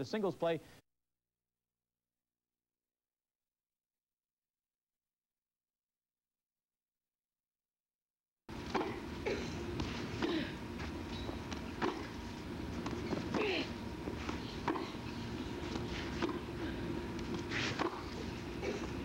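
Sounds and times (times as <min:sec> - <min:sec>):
faint hum: 0:08.5 - 0:19.0
tennis balls struck by rackets: 0:08.6 - 0:19.0.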